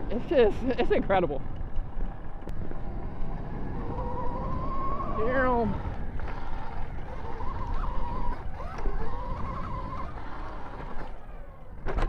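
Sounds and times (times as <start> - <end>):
low rumbling: 0.0 - 12.0
electric motor whining: 2.3 - 12.0.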